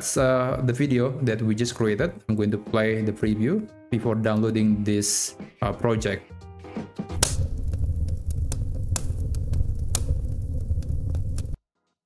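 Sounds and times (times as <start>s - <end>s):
fire crackles and pops: 7.1s - 11.6s
fireplace rumble: 7.2s - 11.6s.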